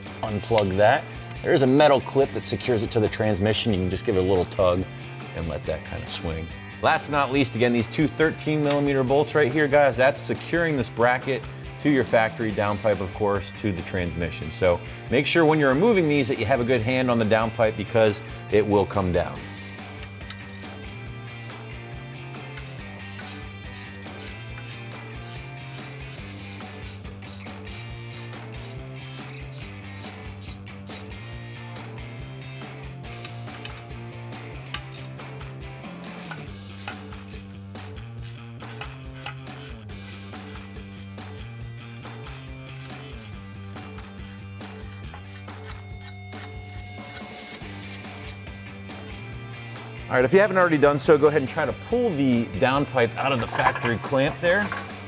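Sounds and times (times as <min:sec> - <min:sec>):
background music with bass line: 0:00.0 - 0:55.0
hand ratchet clicking: 0:19.9 - 0:20.8, 0:22.3 - 0:31.1, 0:34.6 - 0:35.2, 0:36.0 - 0:48.4.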